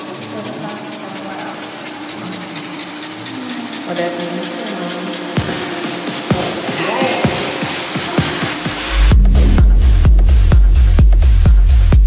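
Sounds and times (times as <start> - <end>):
rapid ticking percussion: 0.0 - 12.0
sustained low synth tones: 8.7 - 12.0.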